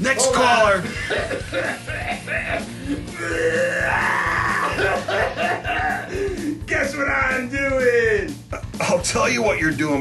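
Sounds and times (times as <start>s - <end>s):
background music: 0.0s - 10.0s
drawn-out wordless grunt-like drone: 1.6s - 5.1s.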